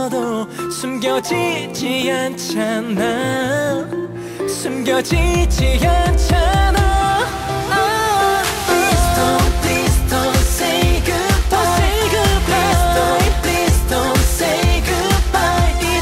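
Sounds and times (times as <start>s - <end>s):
pop song with male vocal: 0.0s - 16.0s.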